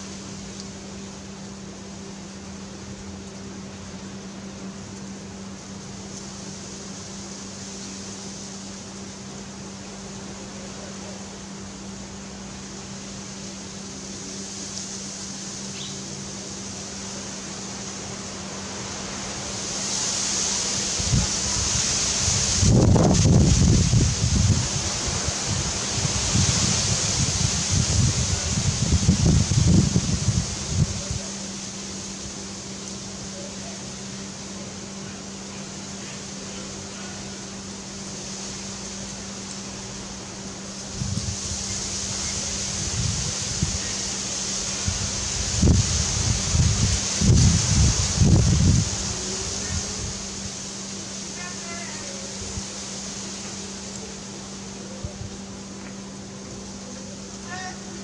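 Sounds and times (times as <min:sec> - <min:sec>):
constant hiss: 0:00.0 - 0:58.0
steady low hum: 0:00.0 - 0:58.0
wind buffeting microphone: 0:21.0 - 0:31.2, 0:44.9 - 0:50.4.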